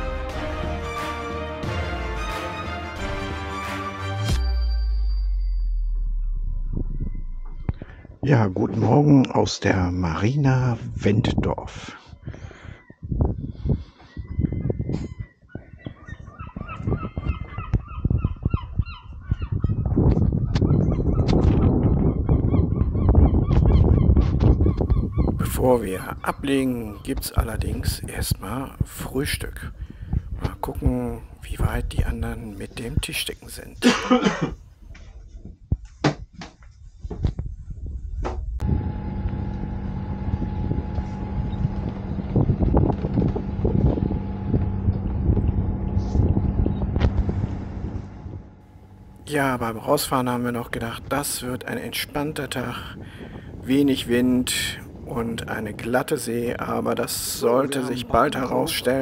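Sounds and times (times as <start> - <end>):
loud low rumble: 4.5 - 8.4, 38.4 - 51.0
birds calling: 12.2 - 28.7
diesel engine running: 38.6 - 49.2.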